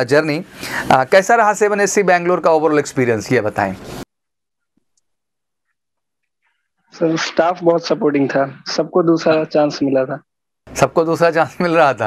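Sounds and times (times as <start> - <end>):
man speaking: 6.9 - 12.0.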